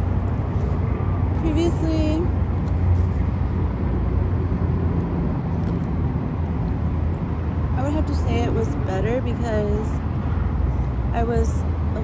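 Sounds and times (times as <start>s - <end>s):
road traffic rumble: 0.0s - 12.0s
woman's voice: 1.4s - 2.3s, 7.8s - 10.0s, 11.1s - 12.0s.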